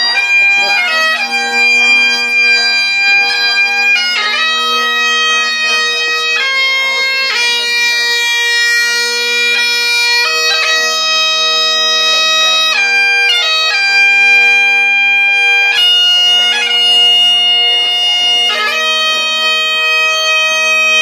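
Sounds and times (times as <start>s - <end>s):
bagpipes playing slow tune: 0.0s - 21.0s.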